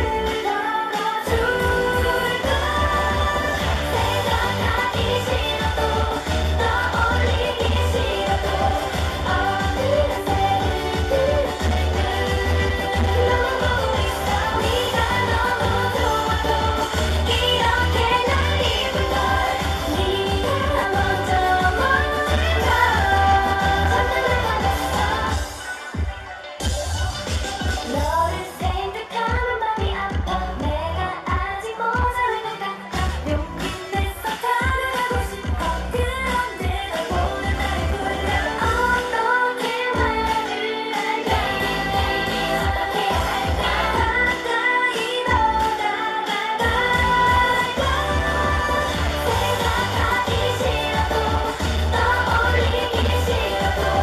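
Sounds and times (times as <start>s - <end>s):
heavy bass backing track: 0.0s - 0.5s, 1.2s - 32.3s, 32.9s - 39.2s, 41.3s - 44.6s, 45.2s - 45.8s, 46.6s - 54.0s
girl group singing pop song: 0.0s - 54.0s.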